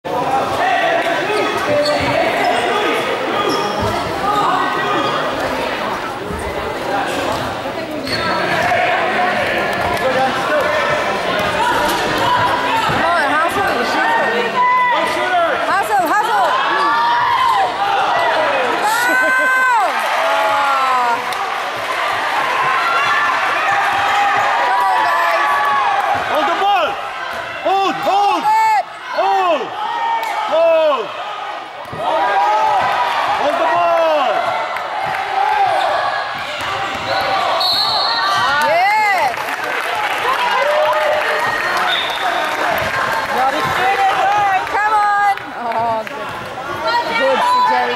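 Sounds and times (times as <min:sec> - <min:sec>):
shoes squeaking on gym floor: 0:01.3 - 0:02.8, 0:07.9 - 0:08.6.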